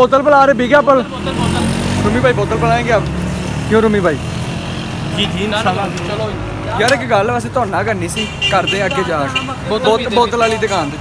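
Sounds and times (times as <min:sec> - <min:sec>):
man talking: 0:00.0 - 0:04.3, 0:05.1 - 0:11.0
street traffic hum: 0:00.0 - 0:11.0.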